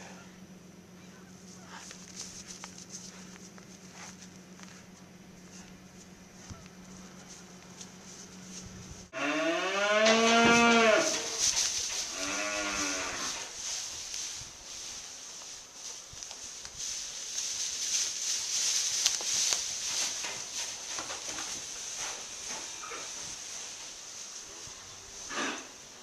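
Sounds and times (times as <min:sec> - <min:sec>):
rustling: 0:01.1 - 0:26.0
calves mooing: 0:09.1 - 0:11.4, 0:12.0 - 0:13.4.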